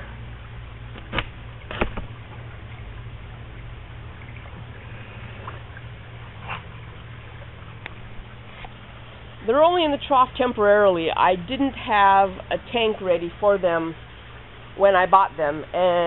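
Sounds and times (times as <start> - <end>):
low motor hum: 0.0 - 16.0.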